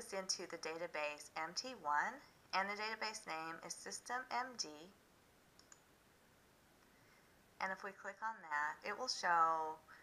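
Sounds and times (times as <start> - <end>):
computer mouse clicks: 5.6 - 5.9.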